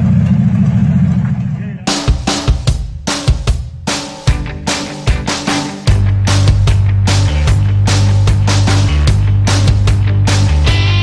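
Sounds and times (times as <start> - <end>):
car engine idling: 0.0 - 11.0
music with a hard beat: 0.2 - 11.0.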